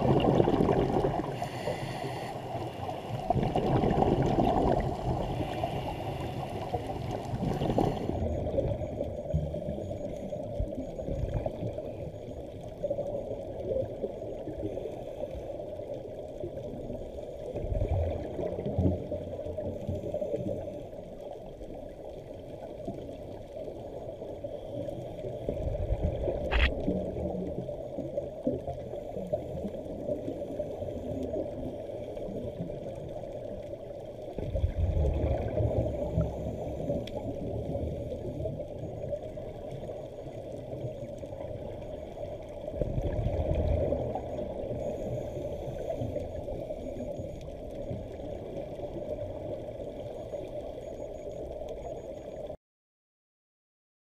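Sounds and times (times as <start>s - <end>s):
regulator exhaust bubbles: 0.0s - 1.7s
muffled underwater hiss: 0.0s - 52.5s
sharp click: 26.5s - 26.8s.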